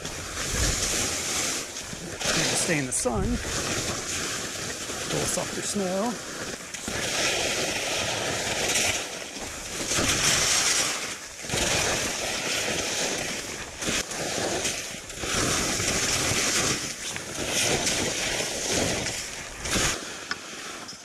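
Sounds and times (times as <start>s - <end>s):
wind rumble on microphone: 0.0s - 20.7s
skis carving on snow: 0.0s - 21.0s.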